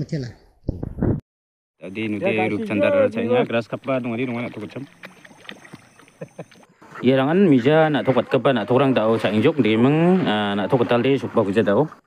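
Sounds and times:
fish splashing in water: 3.3 - 7.0.

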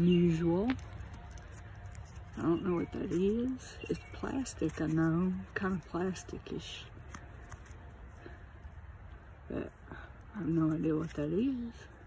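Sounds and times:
low outdoor background: 0.0 - 12.0
soft rustling of handling: 0.0 - 12.0.

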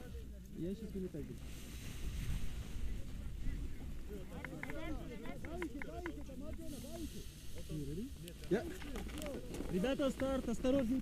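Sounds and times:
people talking in background: 0.0 - 11.0.

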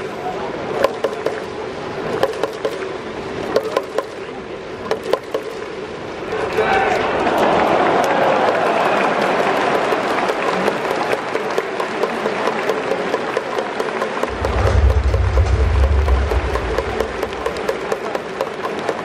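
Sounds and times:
crowd applauding: 7.1 - 18.0
low rumble: 14.3 - 18.2.

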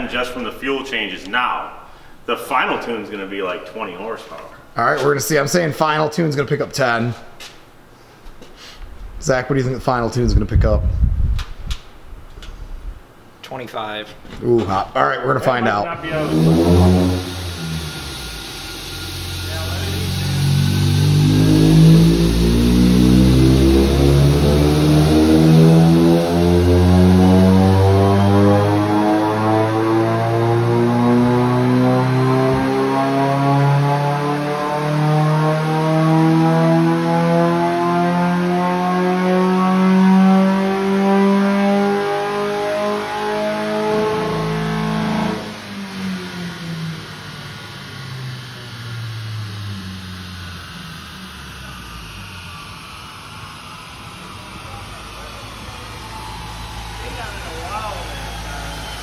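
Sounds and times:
rising whine: 14.7 - 59.0
car engine revving: 15.6 - 59.0.

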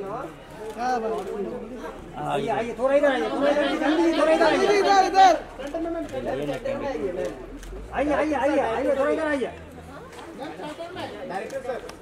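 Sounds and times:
voices talking and calling out: 0.0 - 12.0.

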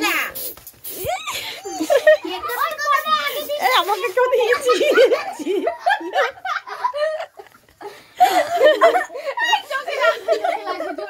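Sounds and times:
children shouting and giggling: 0.0 - 11.0.

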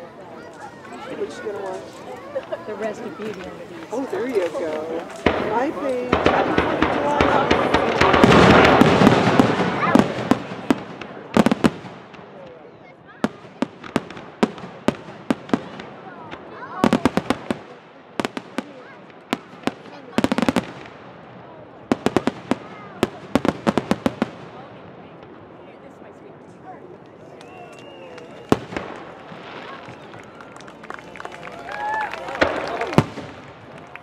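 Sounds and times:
fireworks bangs and crackling: 0.0 - 34.0.

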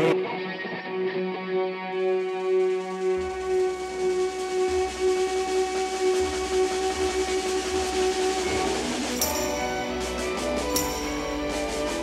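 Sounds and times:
live band droning chord: 8.4 - 12.0.

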